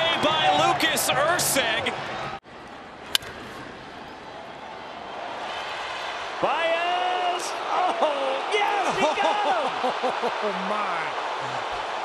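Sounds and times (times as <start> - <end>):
ballpark crowd noise: 0.0 - 12.0.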